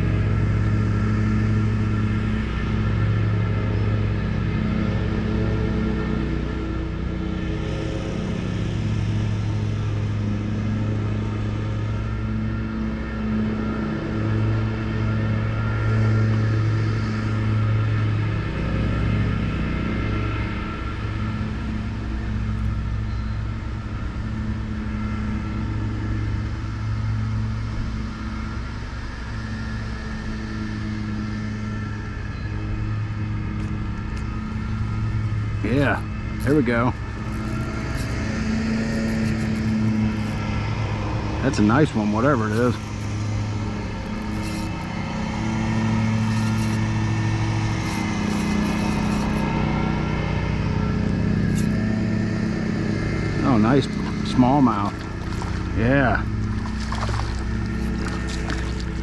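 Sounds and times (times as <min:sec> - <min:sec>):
lawn mower engine running: 0:00.0 - 0:59.0.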